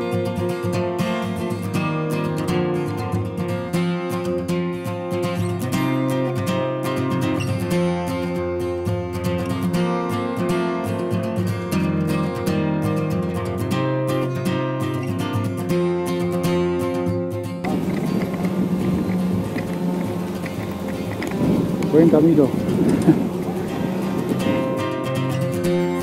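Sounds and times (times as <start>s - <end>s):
outdoor street noise: 0.0s - 26.0s
strummed acoustic guitar music: 0.0s - 26.0s.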